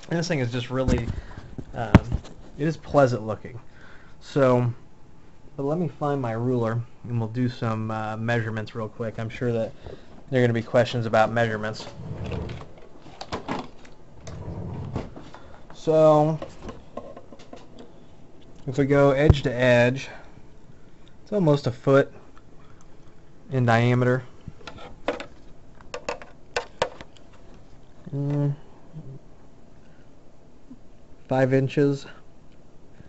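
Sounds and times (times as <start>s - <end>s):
rummaging on a desk: 11.8s - 17.9s.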